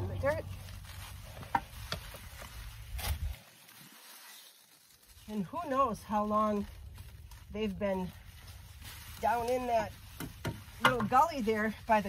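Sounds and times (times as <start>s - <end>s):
soil and leaves rustling: 0.0s - 12.0s.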